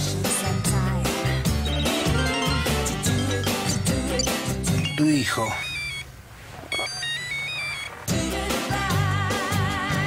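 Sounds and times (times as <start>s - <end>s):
mobile phone ringtone: 1.6s - 6.1s, 6.7s - 8.0s.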